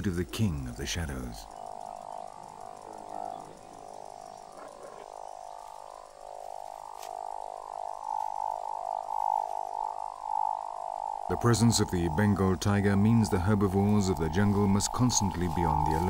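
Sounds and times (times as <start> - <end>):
chorus of frogs croaking: 0.0 - 16.0.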